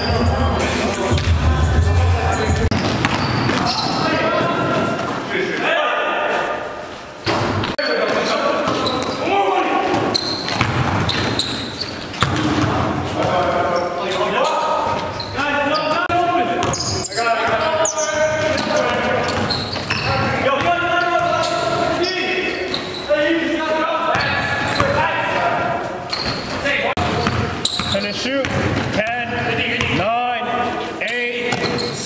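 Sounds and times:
players' voices echoing: 0.0 - 32.0
basketball dribbling on gym floor: 10.5 - 11.4.

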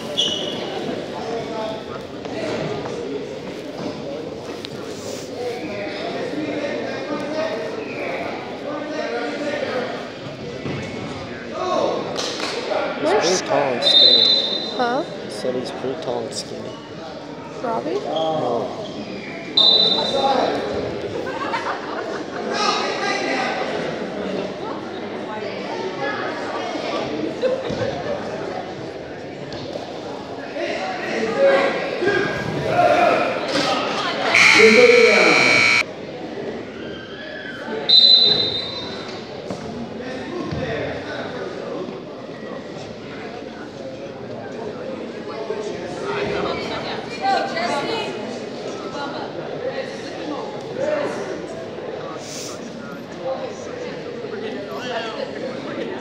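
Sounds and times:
spectators talking and shouting: 0.0 - 56.0
referee's whistle: 0.2 - 0.7, 13.8 - 14.8, 19.6 - 20.2, 34.3 - 35.8, 37.9 - 39.0
buzzer blaring: 34.3 - 35.8
spectators shouting: 34.3 - 35.8
brief high-pitched tone: 34.4 - 35.8.

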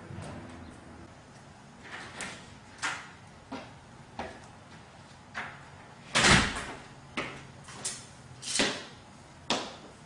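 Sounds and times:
door slamming shut: 6.2 - 6.7.

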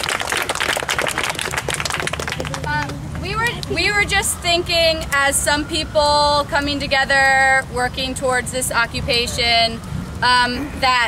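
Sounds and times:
crowd applauding: 0.0 - 3.0.

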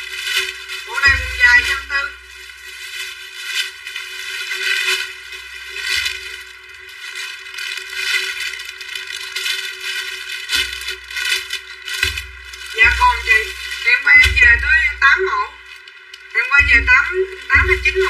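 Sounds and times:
plastic bags crinkling: 0.0 - 18.0.

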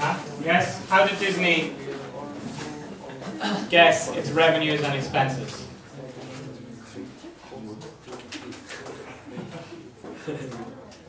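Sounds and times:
quiet indistinct voices talking: 0.0 - 11.0.

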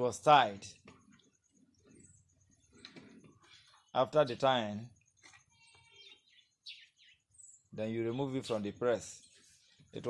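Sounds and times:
faint bird chirps: 0.1 - 10.0.

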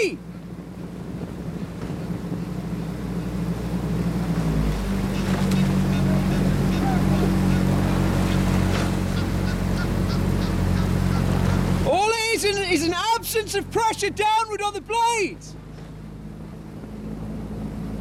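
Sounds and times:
boat engine running: 0.0 - 18.0.

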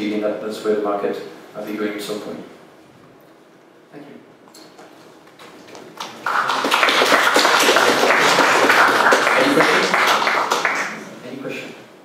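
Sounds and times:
audience applauding: 5.4 - 11.1.

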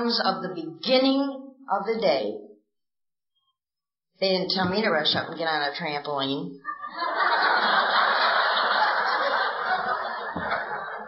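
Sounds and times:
audience laughing: 6.6 - 11.0.

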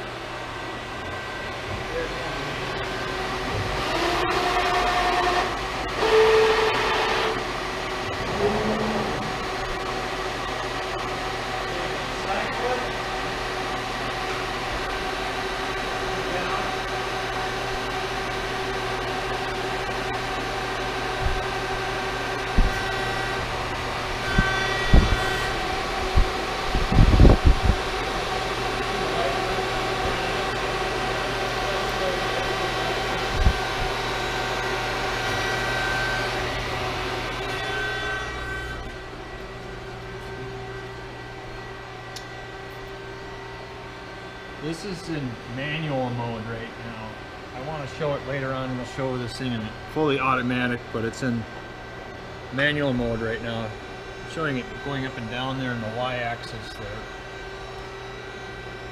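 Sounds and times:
hydraulic press hum: 0.0 - 58.9
hydraulic pump whining: 0.0 - 58.9.

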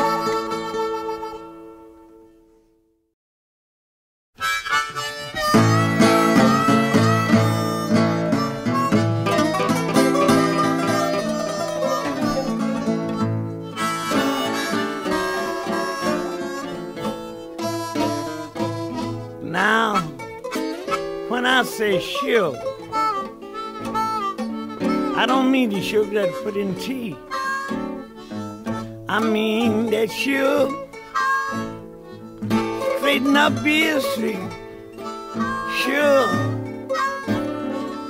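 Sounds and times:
harmonica: 0.0 - 2.3, 4.4 - 38.0
acoustic blues band: 0.0 - 2.4, 4.4 - 38.0
guitars: 0.0 - 2.6, 4.4 - 38.0.

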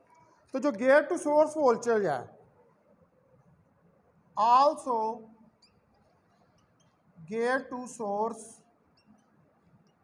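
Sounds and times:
man's voice: 0.6 - 2.3, 4.4 - 5.3, 7.3 - 8.6
marker squeaking on whiteboard: 5.4 - 7.2, 8.7 - 10.0.

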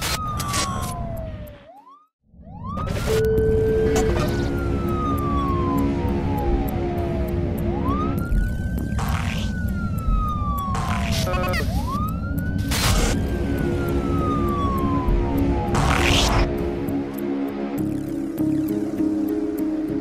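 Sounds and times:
wailing siren: 0.0 - 20.0
theme music with ticking beat: 3.2 - 12.6, 13.2 - 20.0.

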